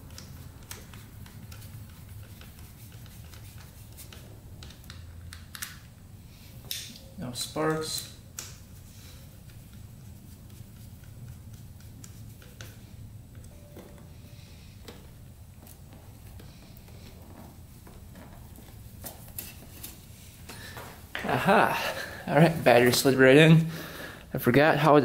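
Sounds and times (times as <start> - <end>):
low steady hum: 0.0 - 25.0.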